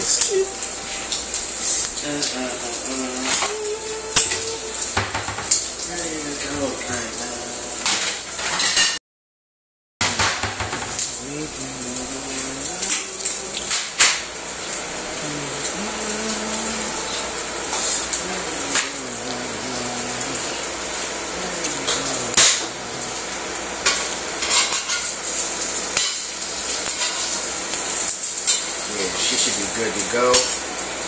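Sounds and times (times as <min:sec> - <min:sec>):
eggs sizzling in a skillet: 0:00.0 - 0:08.8, 0:10.0 - 0:31.0.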